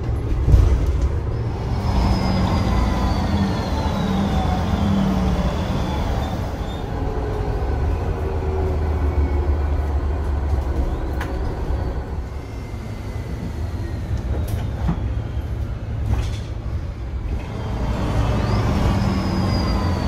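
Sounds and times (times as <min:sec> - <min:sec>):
bus cabin drone: 0:00.0 - 0:20.0
gearbox whistle sliding in pitch: 0:02.0 - 0:04.6, 0:18.2 - 0:20.0.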